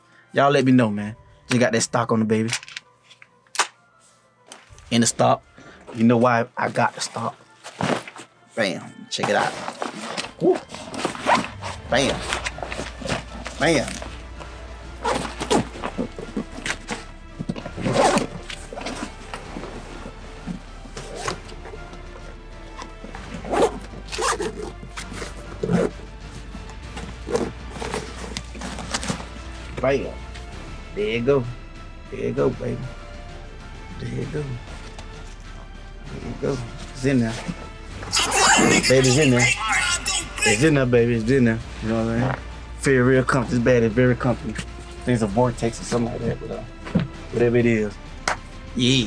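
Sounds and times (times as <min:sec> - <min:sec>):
backpack zippers zipping: 0:09.3 - 0:14.0, 0:15.0 - 0:16.8, 0:17.7 - 0:19.2, 0:21.0 - 0:21.4, 0:23.3 - 0:26.0, 0:27.2 - 0:29.2.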